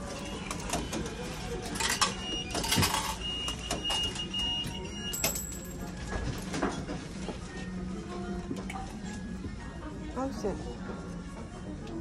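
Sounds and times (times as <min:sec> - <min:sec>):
ticket machine clicks: 0:00.0 - 0:05.9.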